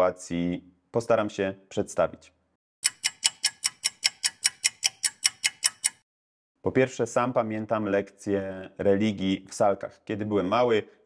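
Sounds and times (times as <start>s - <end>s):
fast clock ticking: 2.8s - 6.0s.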